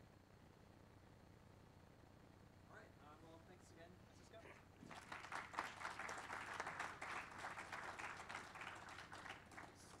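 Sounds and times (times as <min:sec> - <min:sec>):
audience applauding: 0:04.9 - 0:10.0.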